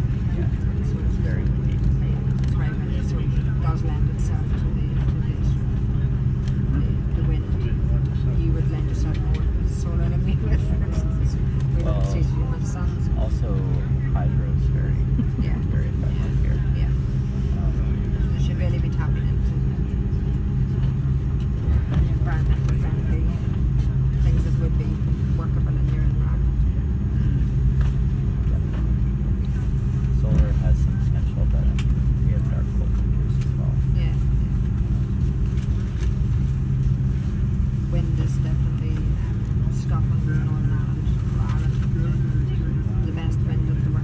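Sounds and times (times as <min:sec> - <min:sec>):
aircraft engine rumble: 0:00.0 - 0:44.0
faint voices: 0:00.0 - 0:44.0
wheels rolling on taxiway: 0:00.0 - 0:44.0.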